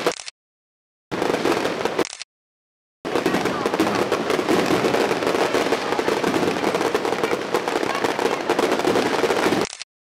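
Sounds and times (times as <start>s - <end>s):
fireworks crackling: 1.1s - 2.3s, 3.0s - 9.9s.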